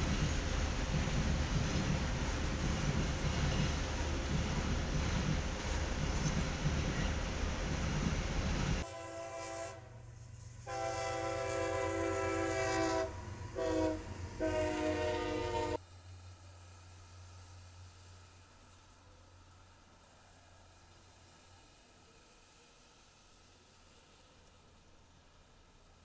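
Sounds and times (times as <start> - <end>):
freight train rumbling on rails: 0.0 - 26.0
locomotive air horn blasts: 8.8 - 10.0, 10.6 - 15.8.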